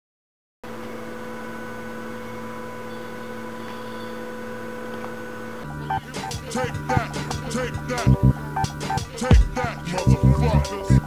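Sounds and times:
electrical hum of held tones: 0.7 - 11.0
music: 5.6 - 11.0.

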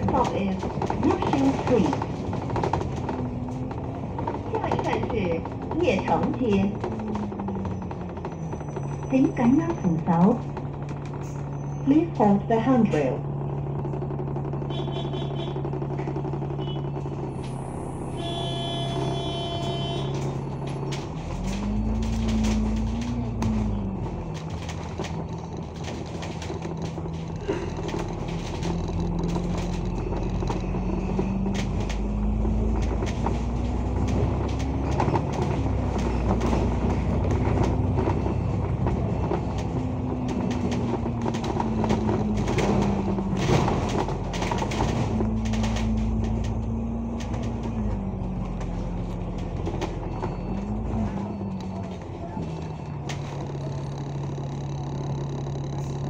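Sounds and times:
interior rattles: 0.0 - 17.6, 18.3 - 56.0
bus engine idling and accelerating: 0.0 - 56.0.

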